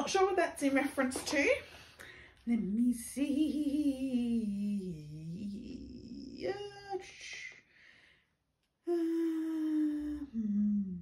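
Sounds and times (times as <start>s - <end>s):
woman humming: 3.2s - 7.0s, 8.8s - 11.0s.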